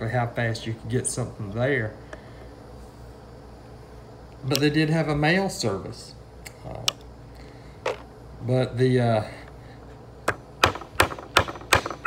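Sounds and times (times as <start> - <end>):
hammer striking wooden board: 10.3 - 12.0.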